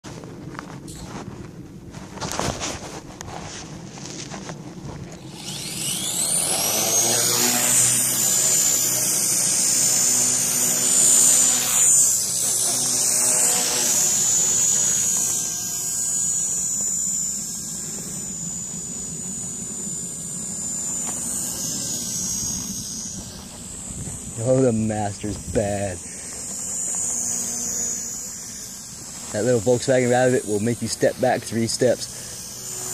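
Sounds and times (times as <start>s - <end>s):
rotor blades buzzing: 0.0s - 32.9s
helicopter motor whine: 0.1s - 32.9s.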